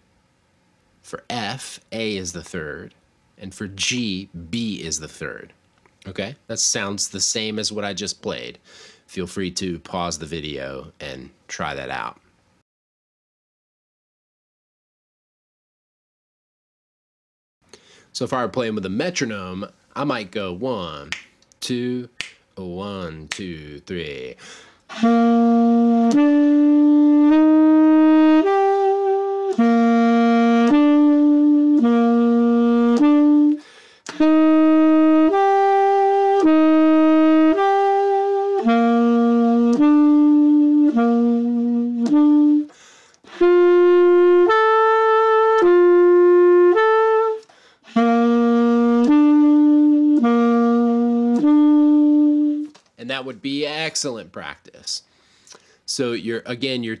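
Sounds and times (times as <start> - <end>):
tenor saxophone held notes: 24.9 - 52.8.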